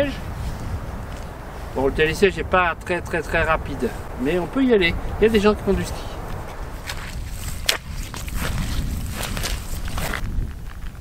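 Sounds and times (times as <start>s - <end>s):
wind rumble on microphone: 0.0s - 11.0s
footsteps crunching through dry grass: 3.2s - 11.0s.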